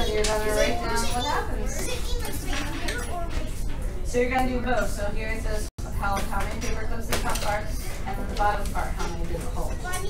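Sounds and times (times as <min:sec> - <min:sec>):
children chattering: 0:00.0 - 0:04.1, 0:09.0 - 0:10.0.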